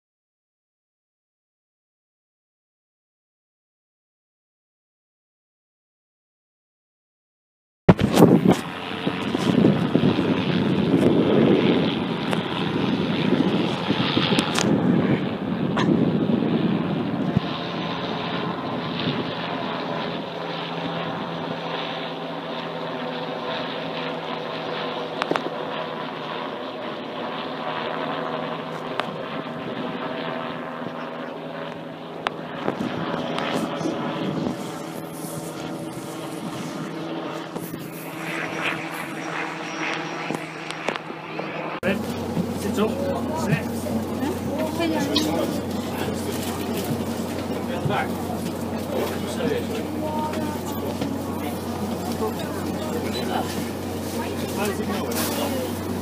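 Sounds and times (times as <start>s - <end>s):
wind rumble on microphone: 7.9s - 20.2s, 32.3s - 41.1s
helicopter flying overhead: 7.9s - 56.0s.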